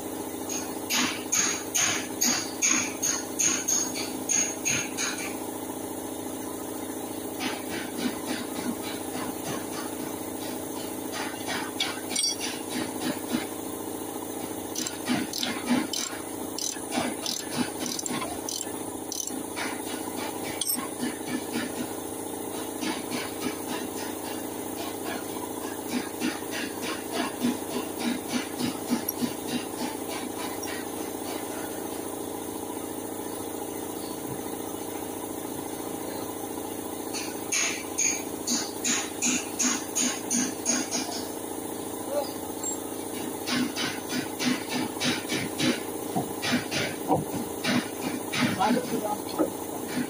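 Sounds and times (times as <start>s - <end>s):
steady background hum: 0.0s - 50.0s
hand tools clinking on metal: 11.9s - 12.6s, 14.8s - 19.4s, 20.5s - 20.9s.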